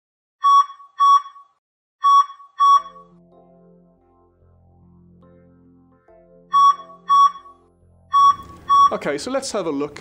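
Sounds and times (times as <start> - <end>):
short high electronic beeps: 0.4 - 3.2, 6.5 - 9.0
soft synthesizer music: 2.0 - 9.4.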